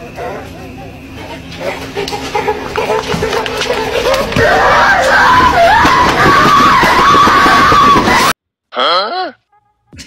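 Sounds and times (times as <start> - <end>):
harsh distorted noise: 2.2 - 8.3.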